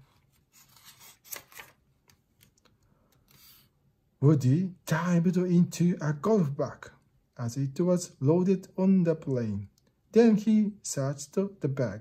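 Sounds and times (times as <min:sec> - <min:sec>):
book page turning: 0:00.0 - 0:02.7.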